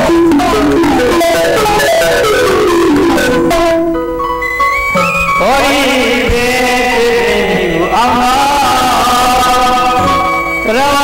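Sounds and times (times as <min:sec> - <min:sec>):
instrumental accompaniment: 0:00.0 - 0:11.0
person chanting a long note: 0:05.2 - 0:11.0.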